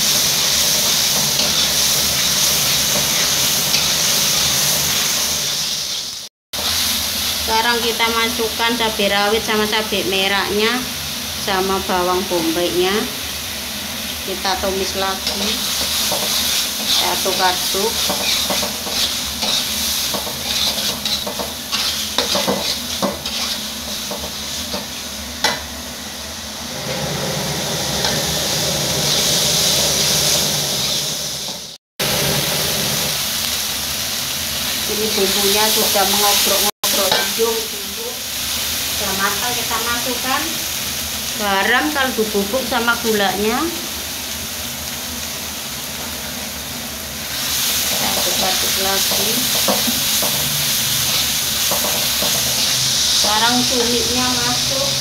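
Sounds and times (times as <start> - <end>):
food sizzling in hot oil: 0.0 - 55.0
metal spatula scraping wok: 0.1 - 6.8, 15.2 - 25.1, 26.8 - 31.8
metal spatula stirring: 15.2 - 24.9.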